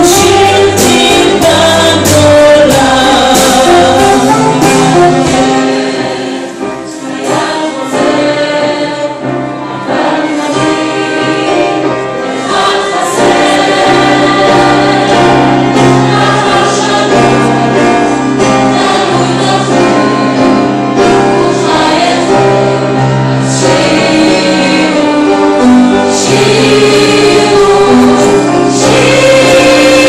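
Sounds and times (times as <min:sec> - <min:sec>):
instrumental ensemble: 0:00.0 - 0:30.0
mixed choir singing: 0:00.0 - 0:30.0.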